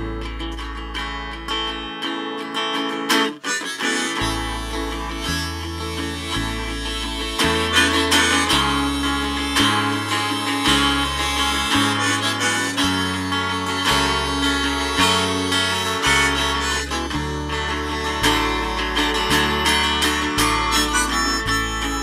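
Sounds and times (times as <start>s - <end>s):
low bass line: 0.0s - 2.0s, 4.1s - 22.0s
harmonica solo: 0.0s - 22.0s
strummed guitar: 0.0s - 22.0s.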